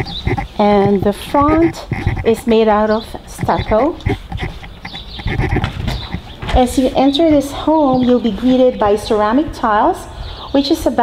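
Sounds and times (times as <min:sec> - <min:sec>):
low rumbling handling noise: 0:00.0 - 0:09.4.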